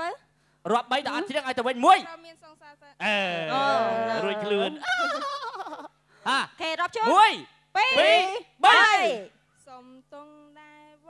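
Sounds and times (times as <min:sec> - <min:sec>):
person imitating rooster crow: 0:03.0 - 0:05.1.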